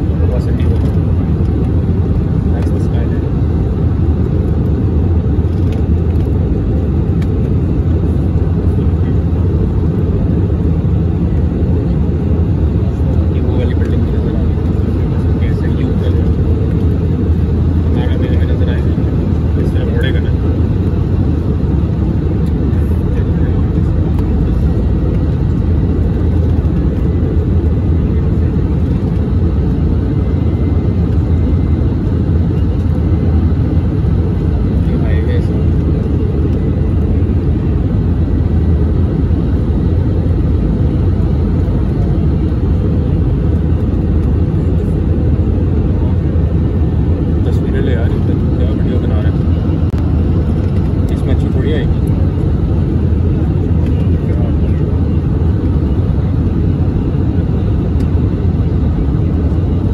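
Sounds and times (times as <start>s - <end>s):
airplane cabin engine rumble: 0.0s - 59.9s.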